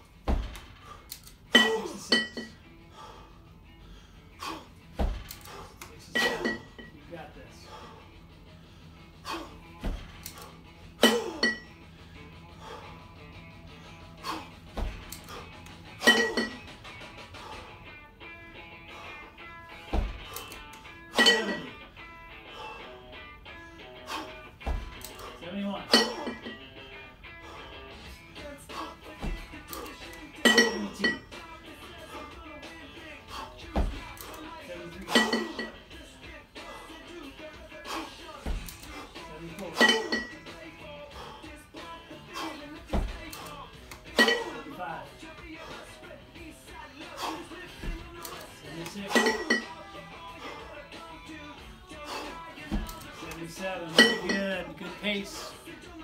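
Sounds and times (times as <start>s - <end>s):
background music: 0.0s - 56.0s
kettlebells clinking: 0.3s - 2.7s, 5.0s - 7.1s, 9.8s - 11.9s, 14.4s - 17.0s, 19.8s - 21.9s, 24.6s - 26.8s, 28.3s - 32.4s, 33.7s - 35.9s, 37.9s - 41.2s, 42.2s - 45.0s, 47.0s - 51.0s, 52.2s - 55.6s
dull low thumps: 19.8s - 20.3s, 24.5s - 25.0s, 33.6s - 34.2s.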